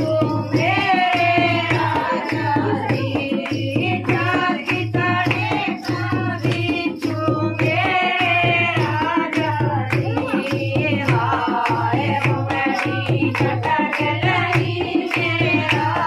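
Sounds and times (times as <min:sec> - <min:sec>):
hand drum beat: 0:00.0 - 0:16.0
women singing folk song: 0:00.0 - 0:16.0.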